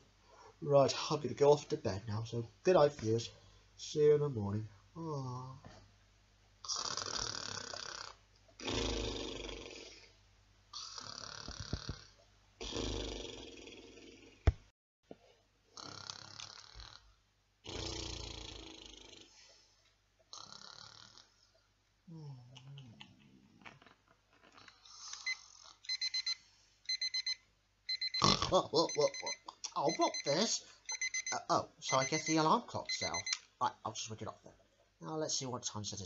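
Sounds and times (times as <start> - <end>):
man snoring: 6.7 - 10.1, 10.8 - 14.4, 15.8 - 17.0, 17.6 - 19.3, 20.3 - 21.3
alarm clock beeping: 25.2 - 33.4.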